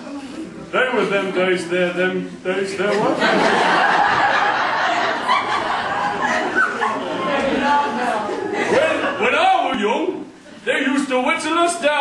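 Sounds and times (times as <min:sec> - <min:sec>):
audience laughing: 0:02.8 - 0:09.4.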